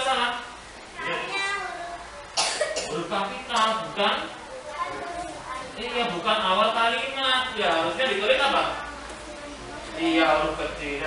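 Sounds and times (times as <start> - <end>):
indistinct classroom voices: 0.0 - 11.0.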